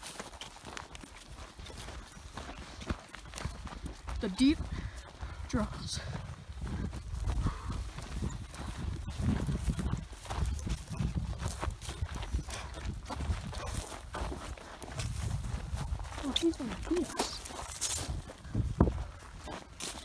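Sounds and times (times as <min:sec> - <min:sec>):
footsteps through dry grass: 0:00.0 - 0:20.0.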